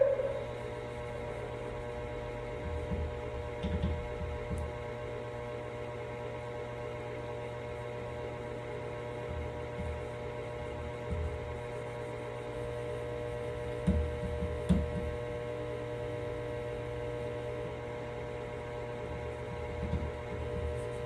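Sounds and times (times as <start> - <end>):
electrical mains hum: 0.0 - 21.0.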